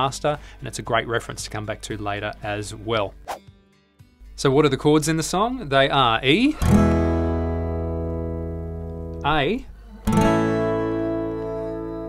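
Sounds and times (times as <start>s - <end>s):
acoustic guitar chord ringing: 6.6s - 9.3s, 10.1s - 12.0s.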